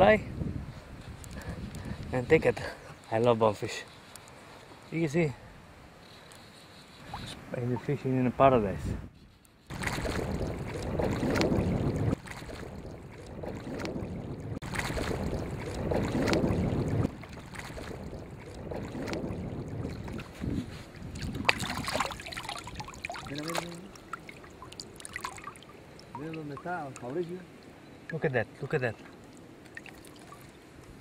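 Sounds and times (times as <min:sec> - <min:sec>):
wind on microphone: 0:00.0 - 0:02.7, 0:08.6 - 0:26.4
water sloshing and splashing: 0:09.7 - 0:31.0.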